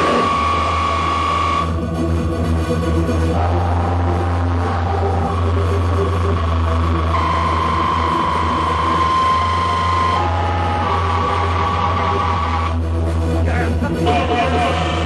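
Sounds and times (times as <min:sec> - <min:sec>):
heavy bass drone: 0:00.0 - 0:15.0
sustained synth notes: 0:00.0 - 0:15.0.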